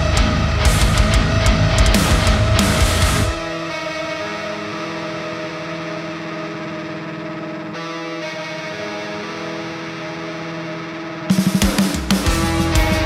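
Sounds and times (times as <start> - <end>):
distorted electric guitar chords: 0.0 - 13.0.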